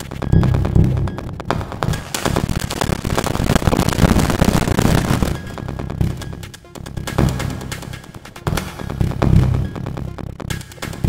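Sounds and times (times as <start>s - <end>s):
glitchy electronic music: 0.0s - 11.0s
low rhythmic pulse: 0.0s - 11.0s.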